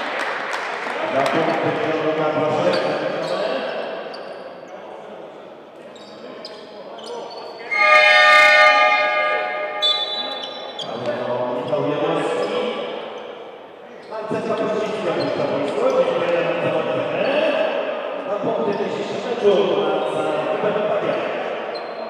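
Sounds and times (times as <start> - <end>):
players' voices: 0.0 - 22.0
hall noise: 7.6 - 10.5
buzzer horn: 7.7 - 10.3.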